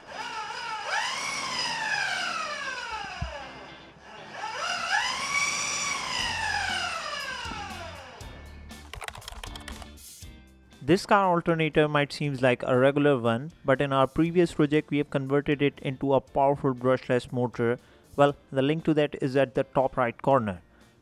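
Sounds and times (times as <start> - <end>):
electric motor whine: 0.0 - 8.5
background music: 2.6 - 21.0.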